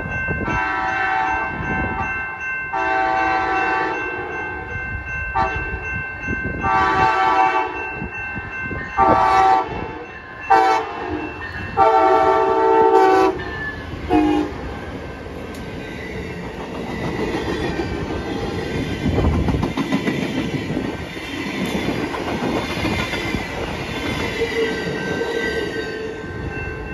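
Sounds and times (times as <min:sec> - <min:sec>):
locomotive horn: 0:00.5 - 0:01.5, 0:02.8 - 0:04.3, 0:06.6 - 0:07.8, 0:09.0 - 0:11.2, 0:11.8 - 0:13.5, 0:14.1 - 0:14.6
train wheels clicking over rail joints: 0:15.4 - 0:25.7.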